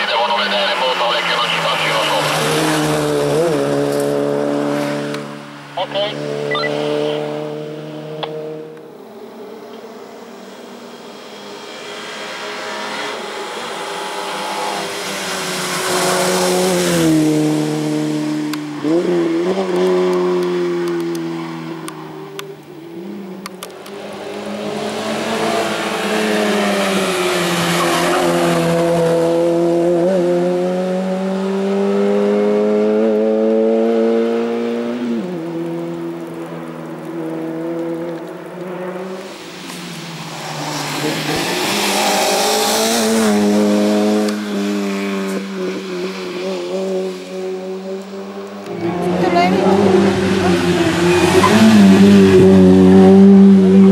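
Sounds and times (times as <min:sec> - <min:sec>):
car engine revving hard: 0:00.1 - 0:08.8, 0:10.2 - 0:21.2, 0:24.1 - 0:36.0, 0:40.4 - 0:53.9.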